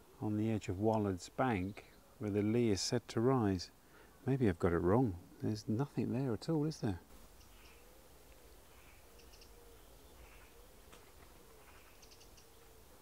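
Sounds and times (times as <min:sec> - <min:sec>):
distant bird low call: 0:07.2 - 0:13.0
faint high bird chirps: 0:07.3 - 0:08.0, 0:08.6 - 0:10.8, 0:11.6 - 0:12.8.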